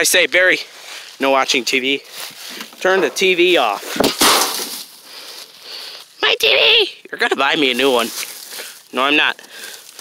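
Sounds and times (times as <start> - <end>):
rustling dry leaves: 0.0 - 6.2, 7.4 - 10.0
television crashing onto ground: 3.9 - 4.8.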